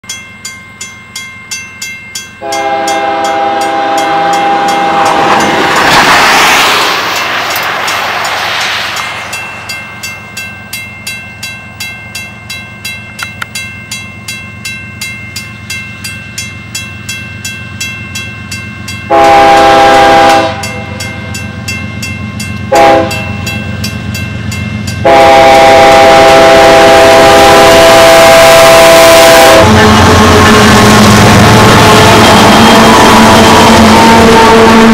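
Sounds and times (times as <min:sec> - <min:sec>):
railway crossing bell ringing: 0:00.0 - 0:05.8, 0:07.0 - 0:34.9
passing locomotive rumble: 0:00.1 - 0:34.9
locomotive air horn chord: 0:02.4 - 0:05.4, 0:19.1 - 0:21.0, 0:22.7 - 0:23.3, 0:25.0 - 0:34.9.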